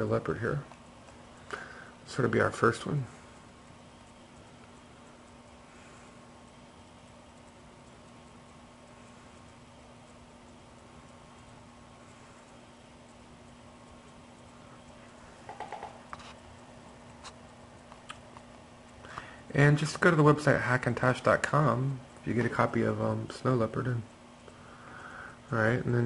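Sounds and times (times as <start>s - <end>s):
faint steady hum: 0.0s - 26.0s
small clicks and taps: 13.9s - 16.4s, 17.1s - 19.3s.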